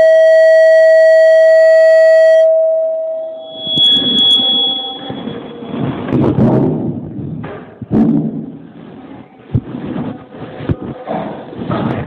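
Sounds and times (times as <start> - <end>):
higher thin steady tone: 0.0 - 5.9
loud held electronic note: 0.0 - 6.4.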